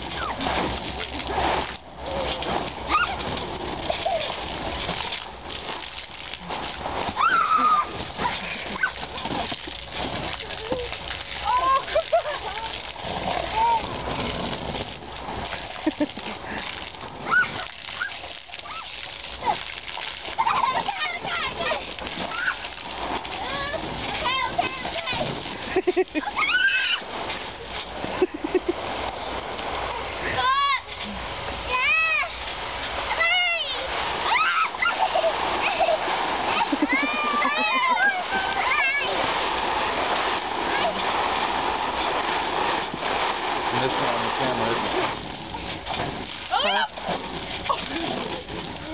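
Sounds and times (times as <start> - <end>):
water spraying and splashing: 0.0 - 48.9
children squealing and laughing: 2.8 - 4.5, 7.1 - 9.5, 10.4 - 14.0, 17.2 - 27.1, 33.1 - 39.3.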